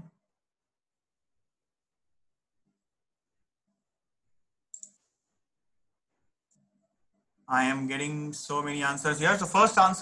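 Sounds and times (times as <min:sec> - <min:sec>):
sharp clicks: 0:04.7 - 0:05.0.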